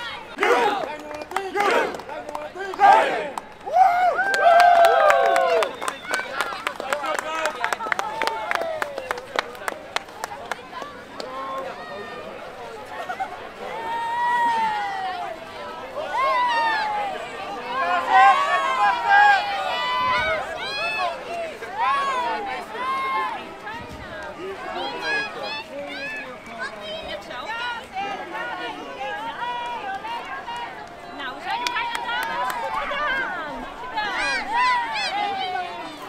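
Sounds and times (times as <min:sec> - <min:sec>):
people shouting and cheering: 0:00.0 - 0:36.0.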